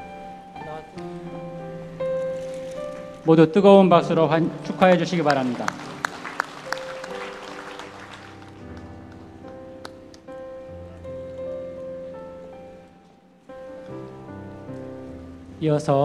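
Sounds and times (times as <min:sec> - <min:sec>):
slow sustained chords: 0:00.0 - 0:16.0
applause: 0:04.7 - 0:09.3.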